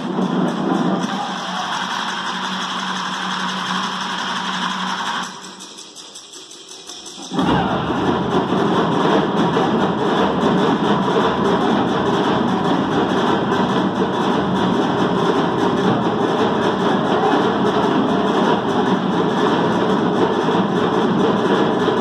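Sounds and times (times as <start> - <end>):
drum ensemble playing fast rhythm: 0.0 - 22.0.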